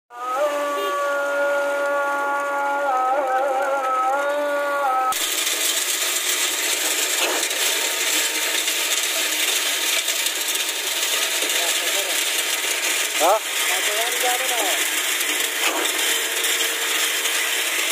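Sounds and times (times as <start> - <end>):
wet concrete rushing from hose: 0.2 - 4.1, 5.1 - 17.9.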